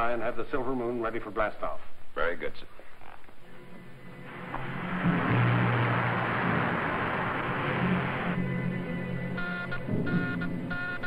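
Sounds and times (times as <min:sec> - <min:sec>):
rocket engine rushing hiss: 0:04.3 - 0:08.5.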